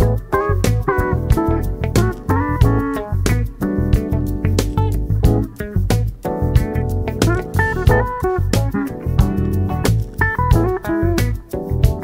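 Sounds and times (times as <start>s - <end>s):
electric bass guitar line: 0.0s - 12.0s.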